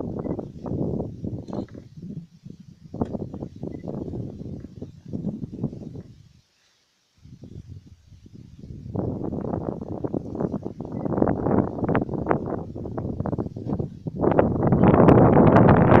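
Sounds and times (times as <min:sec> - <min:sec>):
wind buffeting microphone: 0:00.0 - 0:06.4, 0:07.2 - 0:16.0.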